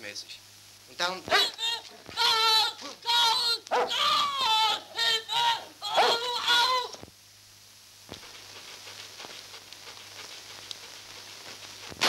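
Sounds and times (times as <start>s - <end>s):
dog howling: 1.3s - 6.9s.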